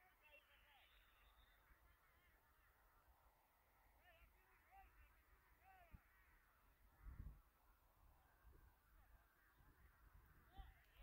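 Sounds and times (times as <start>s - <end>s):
faint bird chirps: 0.0s - 7.5s, 8.1s - 11.0s.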